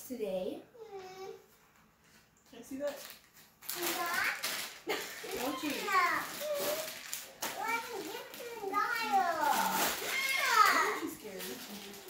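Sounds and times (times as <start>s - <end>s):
children talking and calling out: 0.8s - 1.5s, 3.7s - 11.2s.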